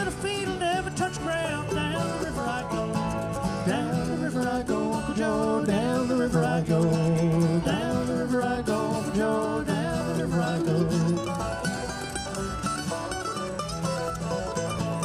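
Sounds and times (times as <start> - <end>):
banjo: 0.0 - 15.0
mandolin: 0.0 - 15.0
strummed acoustic guitar: 0.0 - 15.0
person singing: 3.7 - 11.4.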